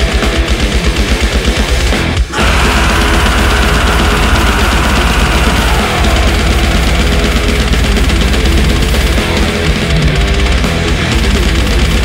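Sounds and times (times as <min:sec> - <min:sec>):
death metal music: 0:00.0 - 0:12.0.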